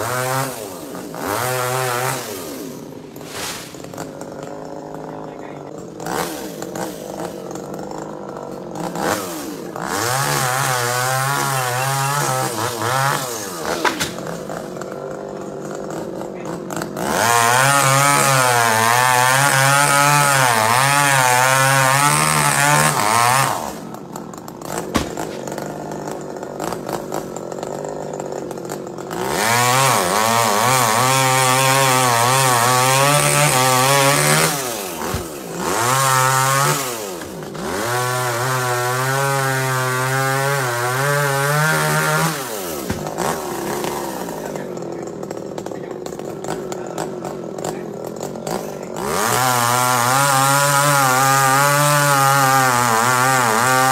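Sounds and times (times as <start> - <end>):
chainsaw cutting tree limbs: 0.0 - 53.9.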